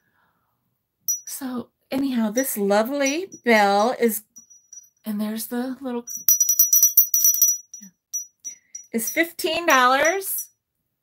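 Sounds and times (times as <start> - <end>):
glass hand bell ringing: 1.1 - 1.3, 2.4 - 5.0, 6.1 - 10.3.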